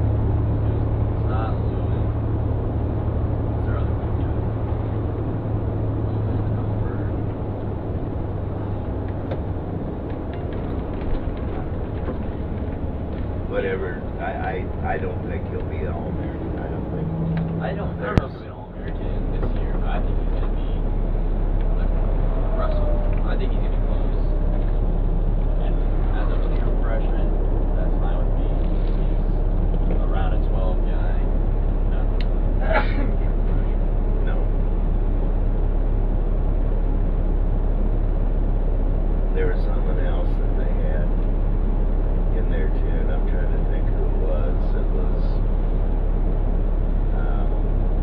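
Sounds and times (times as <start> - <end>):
coach engine low rumble: 0.0 - 48.0
faint voices: 21.6 - 34.6.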